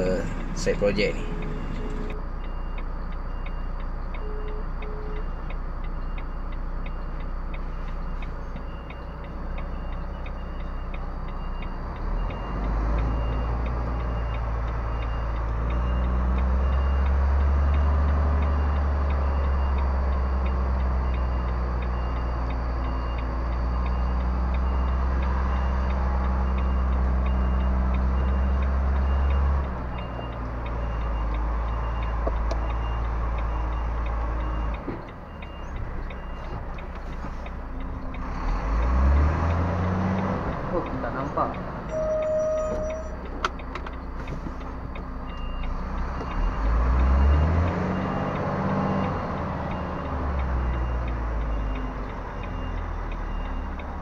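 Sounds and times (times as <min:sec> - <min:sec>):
faint steady ticking: 0:00.0 - 0:54.0
truck diesel engine running: 0:00.0 - 0:54.0.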